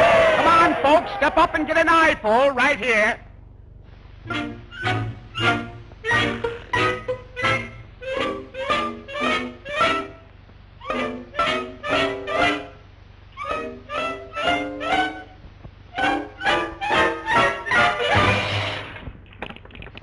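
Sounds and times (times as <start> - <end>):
orchestral staccato chords: 4.3 - 10.2, 10.9 - 12.8, 15.9 - 18.9.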